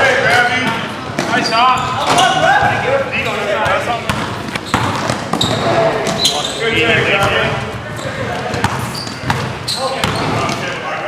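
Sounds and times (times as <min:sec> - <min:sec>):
basketball bouncing on wooden floor: 0:03.7 - 0:06.2, 0:06.8 - 0:10.6.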